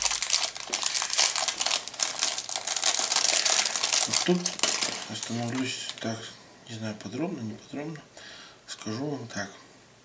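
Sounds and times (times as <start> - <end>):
plastic bag crinkling: 0.0 - 6.3.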